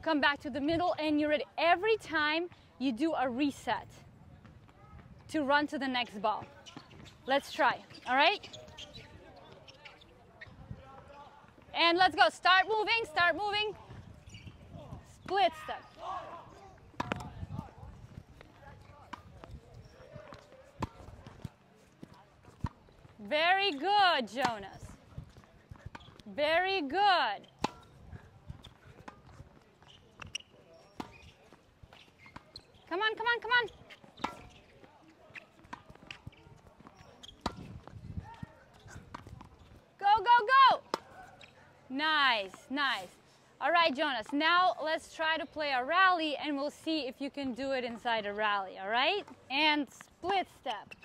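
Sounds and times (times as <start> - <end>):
tennis balls struck by rackets: 16.8 - 17.7, 20.2 - 21.6, 23.6 - 24.9, 26.8 - 28.0, 33.4 - 34.7, 35.3 - 39.5
ball bouncing on hard court: 16.9 - 17.4
tennis ball struck by racket: 16.9 - 17.4, 37.4 - 37.7
balls bouncing on hard court: 16.9 - 39.7.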